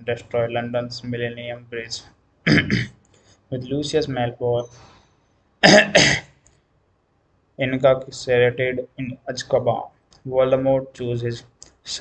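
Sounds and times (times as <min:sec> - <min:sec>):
man coughing: 0:02.5 - 0:03.0, 0:05.6 - 0:06.4.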